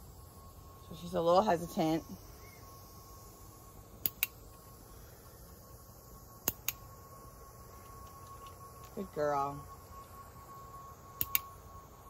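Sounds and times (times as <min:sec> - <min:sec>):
thin high tone: 0:00.0 - 0:12.0
sharp double clicks: 0:04.0 - 0:04.4.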